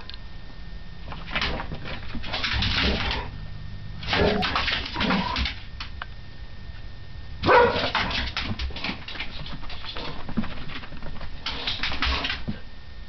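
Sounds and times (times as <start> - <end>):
dogs scuffling with clicks: 1.1 - 3.3, 4.0 - 6.0, 7.7 - 12.6
dog barking: 7.4 - 8.0.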